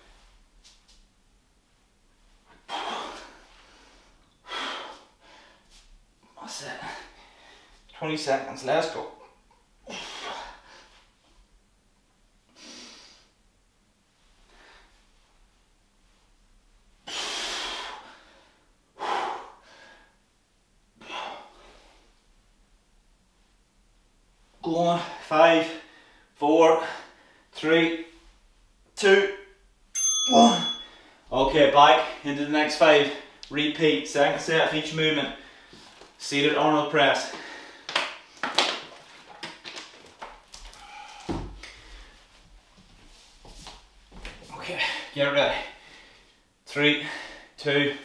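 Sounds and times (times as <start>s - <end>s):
man breathing: 2.5s - 5.9s, 6.5s - 7.9s, 9.8s - 11.1s, 17.0s - 20.2s, 25.0s - 27.5s, 35.4s - 36.1s, 37.3s - 38.4s, 40.7s - 42.4s, 44.5s - 47.6s
man exhaling forcefully: 2.7s - 3.4s, 17.0s - 18.4s.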